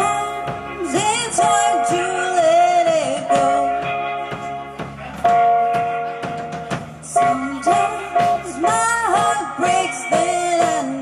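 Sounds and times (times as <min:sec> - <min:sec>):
drum hits: 0:00.0 - 0:11.0
rock band playing live: 0:00.0 - 0:11.0.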